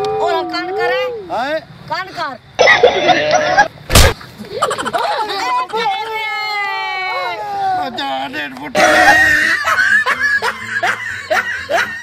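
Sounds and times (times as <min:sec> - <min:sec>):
man laughing: 0:08.8 - 0:12.0.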